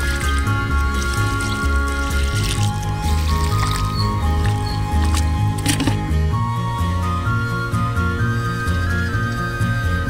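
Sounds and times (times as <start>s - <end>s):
instrumental music with bass line: 0.0s - 10.0s.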